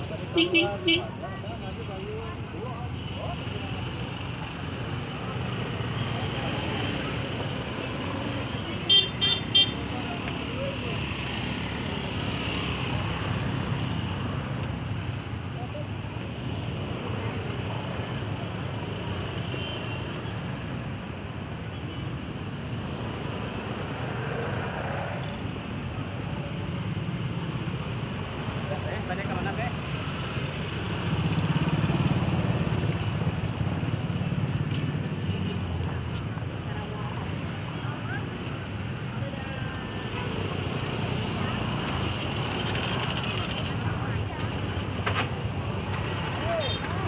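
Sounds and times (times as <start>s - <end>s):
people's voices: 0.0s - 19.3s, 23.8s - 47.0s
hum of passing traffic: 0.0s - 47.0s
vehicle engines running: 22.3s - 47.0s.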